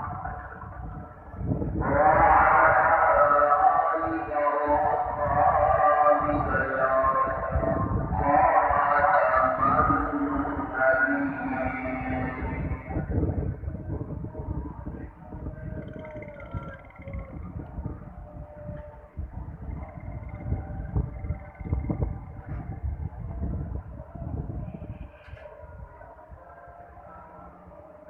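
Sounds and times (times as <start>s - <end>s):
man chanting call to prayer: 0.0s - 28.0s.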